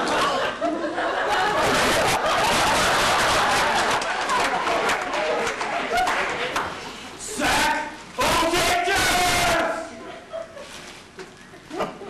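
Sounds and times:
person yelling: 0:07.3 - 0:09.9.

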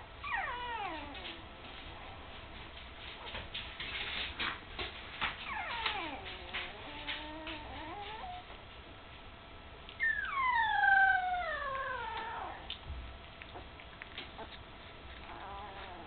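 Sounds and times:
puppy whining: 0:00.0 - 0:03.3, 0:05.2 - 0:08.6, 0:09.9 - 0:16.0.

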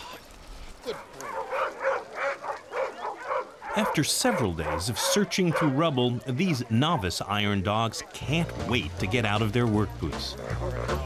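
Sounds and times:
young dog barking: 0:00.8 - 0:06.8.

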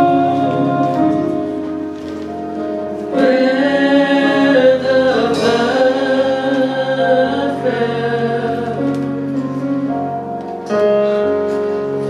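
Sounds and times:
keyboard accompaniment: 0:00.0 - 0:12.0
women singing gospel: 0:03.1 - 0:09.4.

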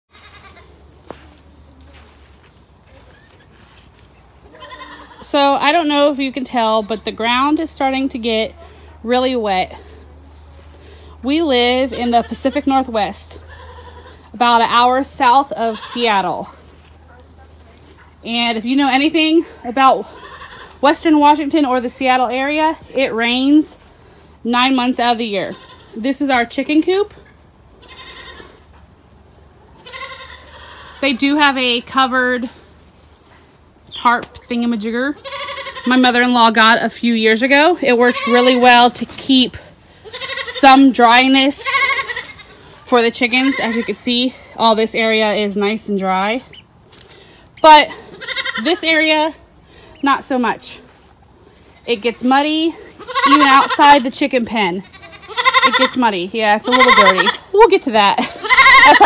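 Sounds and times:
goat bleating: 0:00.1 - 0:01.2, 0:04.4 - 0:08.2, 0:11.4 - 0:16.6, 0:19.4 - 0:21.2, 0:25.2 - 0:26.2, 0:27.7 - 0:28.6, 0:29.8 - 0:31.4, 0:35.1 - 0:36.3, 0:37.9 - 0:39.0, 0:40.0 - 0:44.5, 0:47.8 - 0:49.2, 0:51.8 - 0:59.0.

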